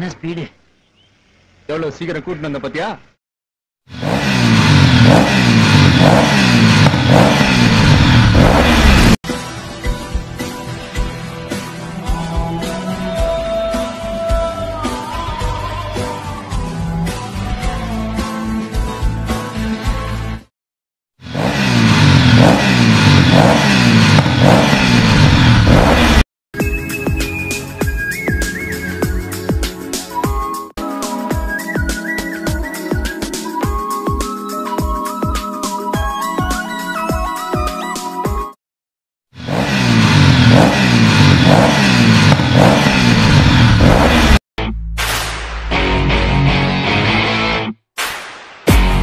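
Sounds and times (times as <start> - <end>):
motorcycle engine revving: 3.9 - 9.2, 21.2 - 26.2, 39.4 - 44.4
electronic music: 26.6 - 38.5, 48.7 - 49.0.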